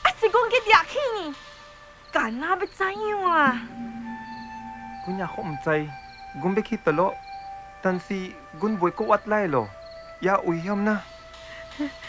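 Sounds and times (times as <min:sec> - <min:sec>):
film score music: 0:00.0 - 0:12.0
voice falling in pitch: 0:03.5 - 0:06.0.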